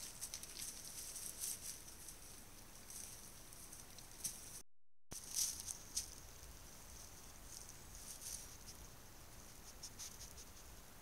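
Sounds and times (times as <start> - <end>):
animal rustling: 0.0 - 10.9.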